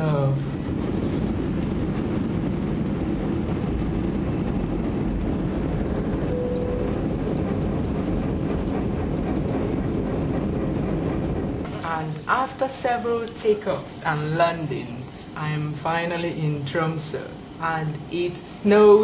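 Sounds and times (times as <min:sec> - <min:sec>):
airliner cabin rumble: 0:00.0 - 0:14.9
faint brief tone: 0:06.3 - 0:07.0.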